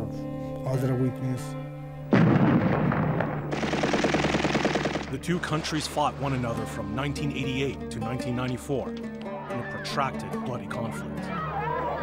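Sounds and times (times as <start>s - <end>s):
automatic rifle fire: 2.1s - 5.2s
heavy blast: 2.1s - 5.2s.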